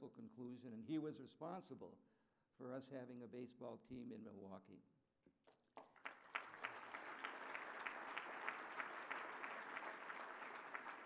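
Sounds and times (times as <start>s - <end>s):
audience applauding: 5.8s - 11.0s.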